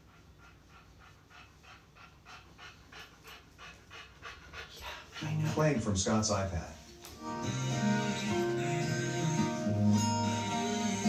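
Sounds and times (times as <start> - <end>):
dog panting: 0.0 - 6.5.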